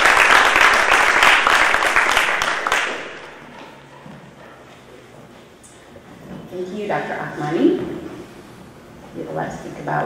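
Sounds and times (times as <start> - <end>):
audience applause in large hall: 0.0 - 3.6
faint room noise: 0.0 - 10.0.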